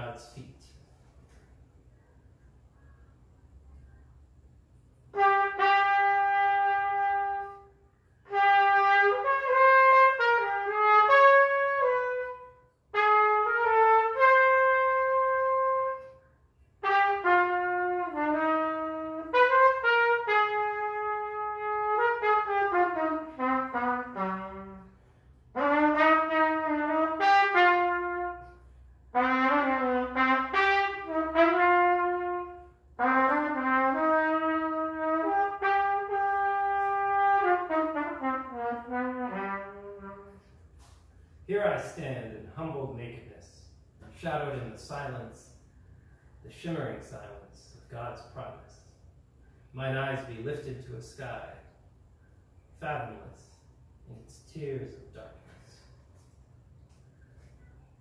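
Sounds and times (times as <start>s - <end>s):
solo trumpet jazz melody: 4.9s - 46.2s.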